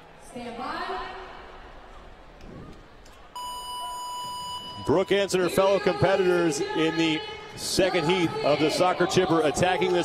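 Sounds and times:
electronic start beep: 0:03.4 - 0:05.4.

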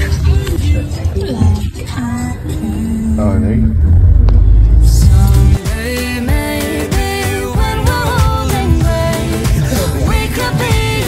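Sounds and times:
deep car cabin rumble: 0:00.0 - 0:05.6
music: 0:04.8 - 0:11.0.

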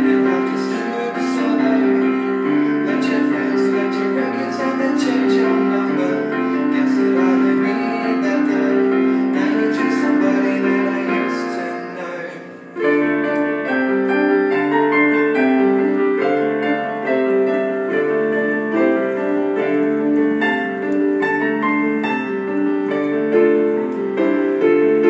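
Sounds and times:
digital piano playing chords: 0:00.0 - 0:25.0.

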